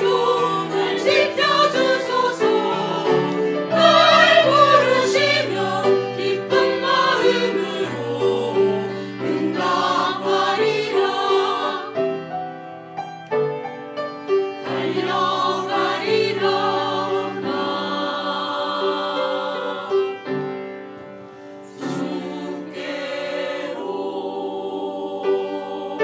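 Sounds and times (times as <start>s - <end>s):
choir singing a slow hymn: 0.0s - 12.3s, 14.6s - 26.0s
piano accompaniment: 0.0s - 26.0s.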